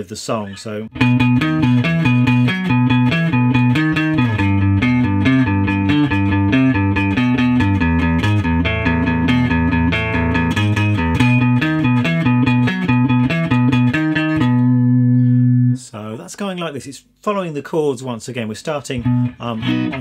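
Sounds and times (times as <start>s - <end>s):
clean electric guitar riff: 0.9s - 15.8s, 19.0s - 20.0s.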